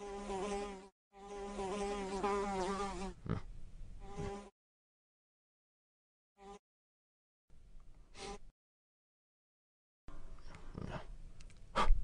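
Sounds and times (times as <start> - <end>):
housefly buzzing: 0.0 - 3.2, 4.0 - 4.5, 6.4 - 6.6.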